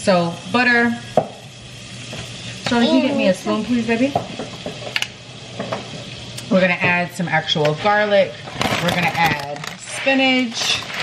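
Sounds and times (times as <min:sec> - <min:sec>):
food sizzling in a frying pan: 0:00.0 - 0:11.0.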